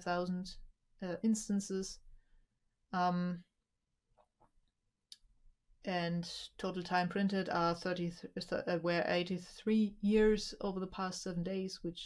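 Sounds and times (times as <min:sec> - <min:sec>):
woman speaking: 0:00.0 - 0:02.0, 0:03.0 - 0:03.5, 0:05.9 - 0:12.0.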